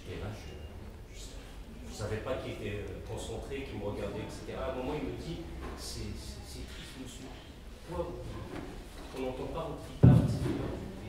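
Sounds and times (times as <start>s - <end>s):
man speaking into a microphone: 1.2s - 8.4s, 9.1s - 11.0s.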